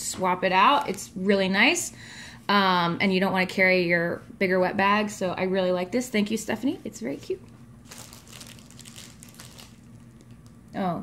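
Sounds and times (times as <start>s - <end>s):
cloth and packaging rustling: 7.8s - 10.6s.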